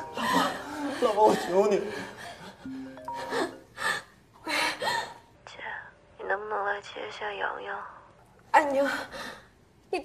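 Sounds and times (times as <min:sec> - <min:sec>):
soft background music: 0:00.0 - 0:04.0.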